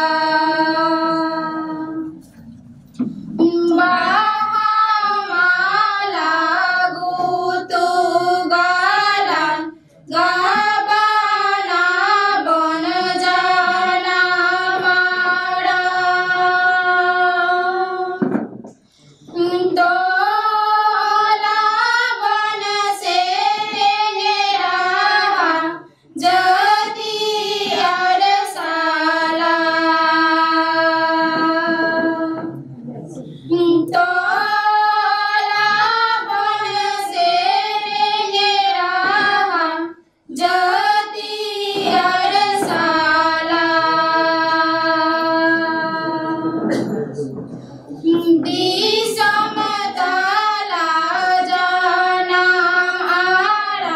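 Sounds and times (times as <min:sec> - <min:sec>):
women singing in unison: 0:00.0 - 0:02.3, 0:03.4 - 0:18.4, 0:19.3 - 0:32.7, 0:33.4 - 0:47.0, 0:48.0 - 0:53.9.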